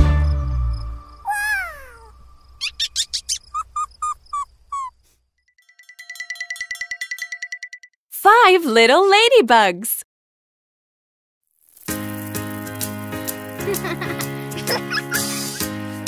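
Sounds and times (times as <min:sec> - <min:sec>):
cartoon mouse squealing: 0:01.3 - 0:05.0
tinkling chime trill: 0:05.6 - 0:07.9.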